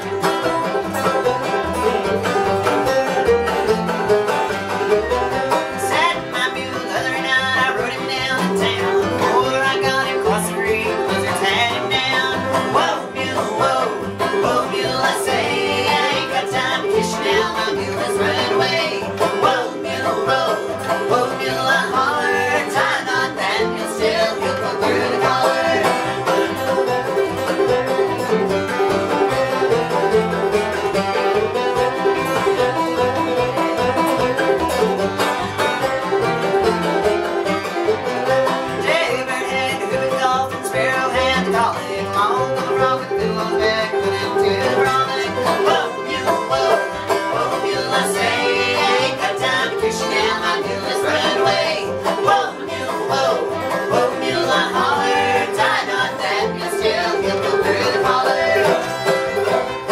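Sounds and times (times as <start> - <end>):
acoustic guitar: 0.0 - 59.9
banjo: 0.0 - 59.9
fiddle: 0.0 - 59.9.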